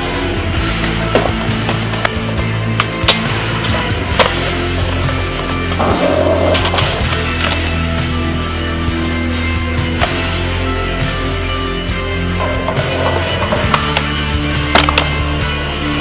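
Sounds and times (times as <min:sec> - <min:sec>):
skateboard wheels rolling on concrete: 0:00.0 - 0:08.1
rock music: 0:00.0 - 0:16.0
skateboard popping and landing: 0:00.6 - 0:02.4.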